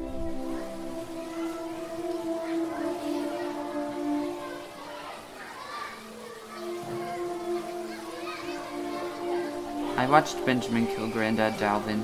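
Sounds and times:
faint distant voices: 0.0 - 12.0
soft sustained background music: 0.0 - 12.0.

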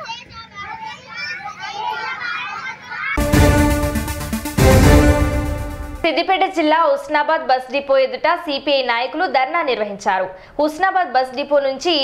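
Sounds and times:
children talking: 0.0 - 3.2.

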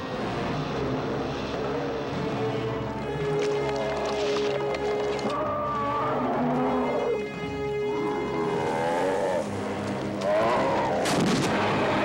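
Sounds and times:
rough animal bellow: 5.2 - 7.3, 8.0 - 9.5, 10.2 - 11.0.

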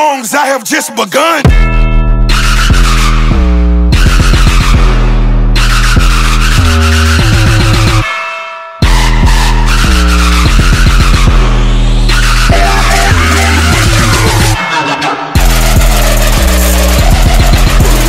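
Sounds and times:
driving electronic beat: 0.0 - 8.2, 8.8 - 18.0
distorted bass synth growling: 9.2 - 14.6, 15.4 - 18.0.

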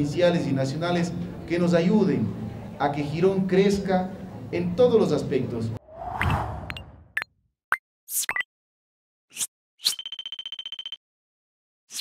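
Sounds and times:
fast stutter of beeps: 9.8 - 11.0.

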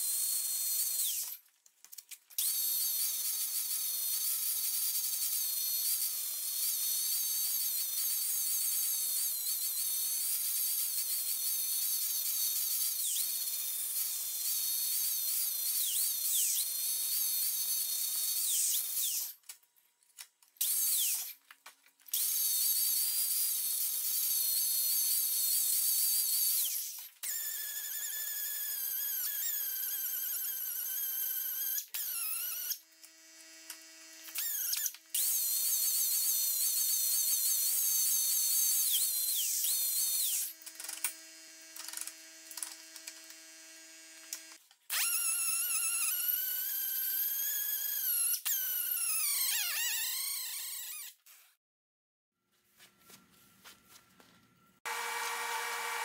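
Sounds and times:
angle grinder grinding metal: 54.8 - 56.0.

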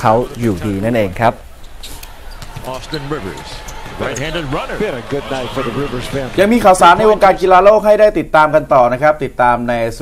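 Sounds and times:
arena crowd noise: 0.0 - 8.2
basketball bouncing on court: 2.3 - 4.3
man talking: 2.6 - 10.0.

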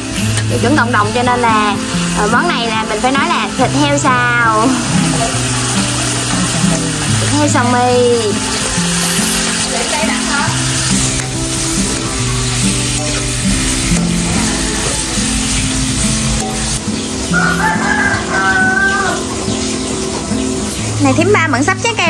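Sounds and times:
background music: 0.0 - 22.0
meat sizzling in a wok: 0.0 - 22.0
rooster crowing: 1.4 - 20.4.

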